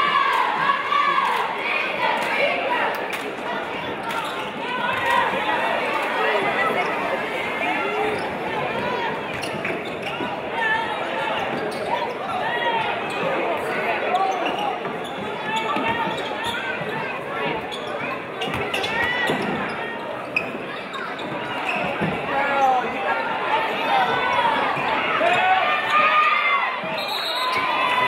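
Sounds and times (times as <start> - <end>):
spectators talking: 0.0 - 28.0.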